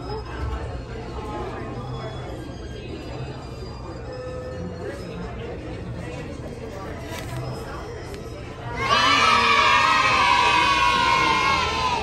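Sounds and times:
children cheering: 8.8s - 12.0s.

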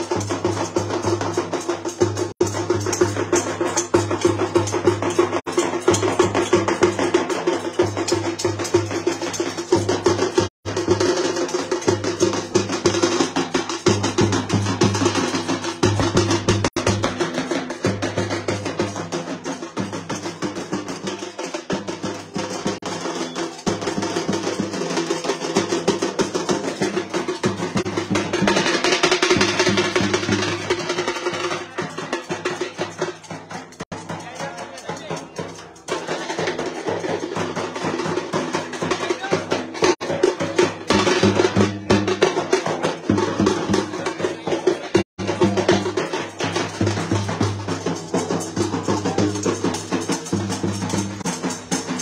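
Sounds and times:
drums beaten in fast rhythm: 0.0s - 52.0s.

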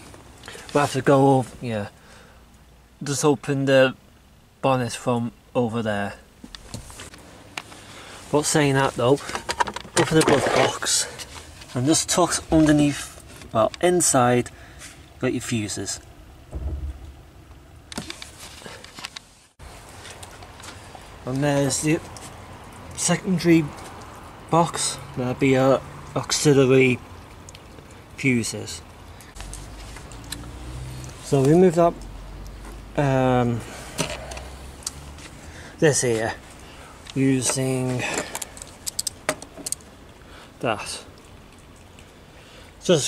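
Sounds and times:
dull low thump: 16.5s - 17.9s.

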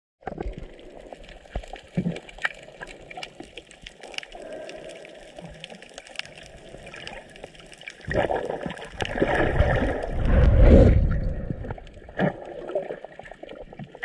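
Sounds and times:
sharp clicks and crackles: 0.2s - 10.7s.

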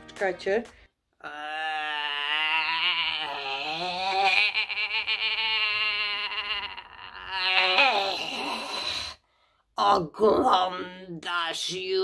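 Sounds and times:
woman moaning in zombie voice: 1.2s - 9.2s.

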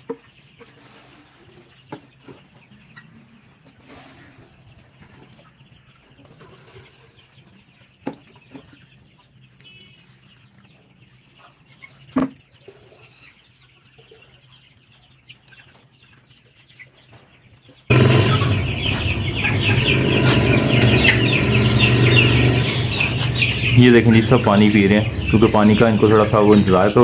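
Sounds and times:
chickens clucking and cheeping: 0.0s - 27.0s
steady low hum: 17.9s - 26.8s.

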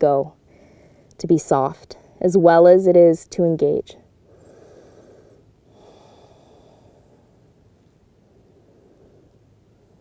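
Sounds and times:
faint breathing: 0.4s - 1.2s, 4.2s - 10.0s.

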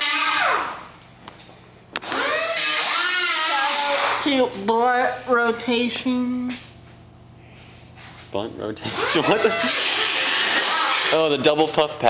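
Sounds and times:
power drill motor whining: 0.0s - 0.8s, 2.0s - 4.3s, 8.8s - 11.2s.

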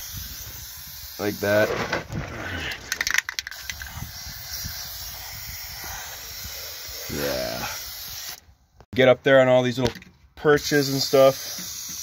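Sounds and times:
aerosol can spraying: 0.0s - 1.6s, 3.4s - 8.4s, 10.6s - 12.0s.

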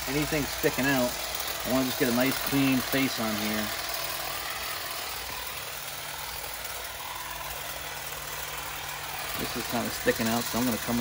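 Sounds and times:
cordless hedge trimmer humming: 0.0s - 11.0s.

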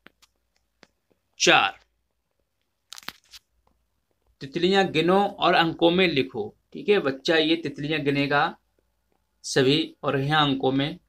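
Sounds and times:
faint clicks and crackles: 0.0s - 4.4s.

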